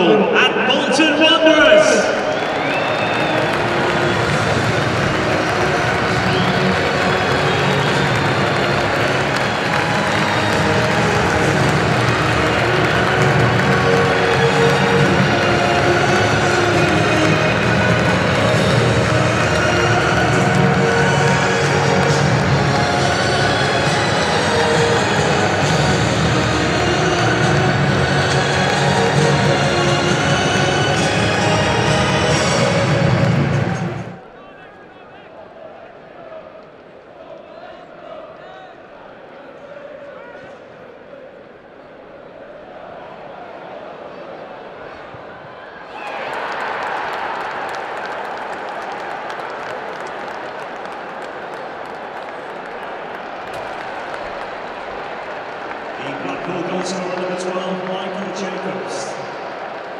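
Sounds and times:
music playing: 0.0s - 34.2s, 53.5s - 59.9s
stadium crowd cheering: 0.0s - 59.9s.

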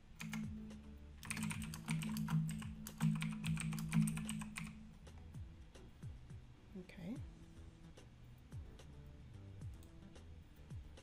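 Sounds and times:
low background music: 0.0s - 11.0s.

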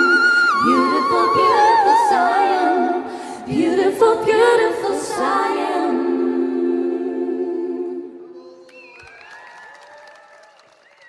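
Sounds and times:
audience clapping: 8.4s - 11.0s.

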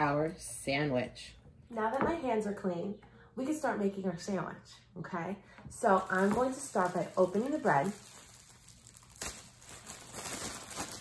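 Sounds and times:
plastic bag crinkling: 6.0s - 11.0s
plastic bag rustle: 6.0s - 11.0s.

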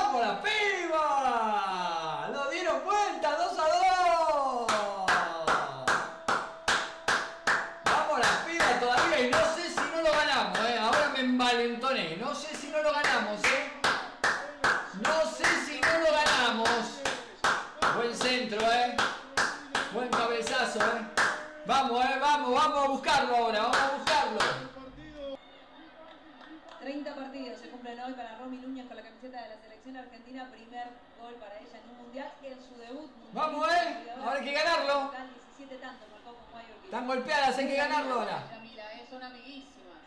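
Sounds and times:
man clapping hands: 4.0s - 11.2s, 12.4s - 21.6s, 23.1s - 24.7s.

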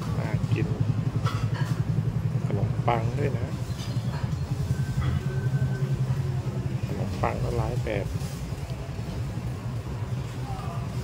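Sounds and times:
low motor rumble: 0.0s - 11.0s.

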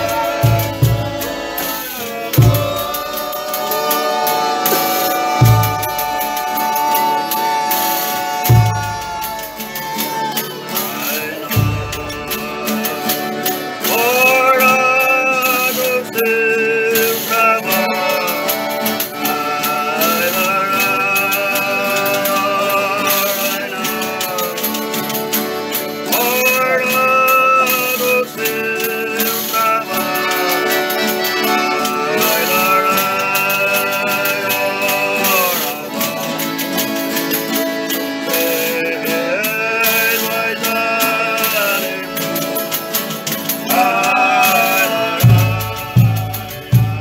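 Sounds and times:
tambourines: 0.0s - 14.4s
male voices singing: 0.0s - 25.2s, 26.0s - 47.0s
accordion: 0.0s - 47.0s
acoustic guitars: 0.0s - 47.0s.

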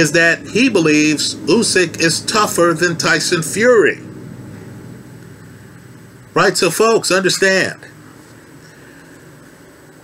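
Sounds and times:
faint steady hiss: 0.0s - 10.0s
low hum: 0.0s - 10.0s
thin high whine: 0.0s - 10.0s.

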